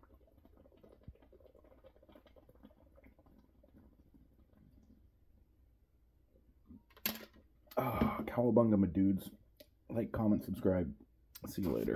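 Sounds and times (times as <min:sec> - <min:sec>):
gulps drinking from shaker bottle: 0:00.0 - 0:04.8.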